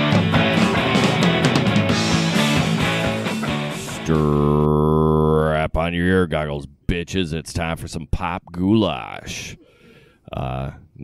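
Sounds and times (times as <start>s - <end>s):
man chanting a long syllable: 4.0s - 5.6s
man speaking: 4.0s - 9.6s, 10.3s - 11.0s.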